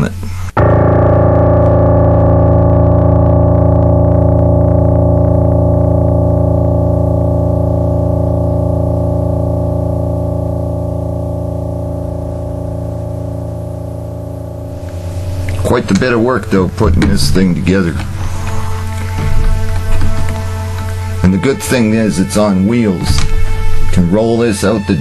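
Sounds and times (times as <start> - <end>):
low piano note ringing: 0.6 - 24.8.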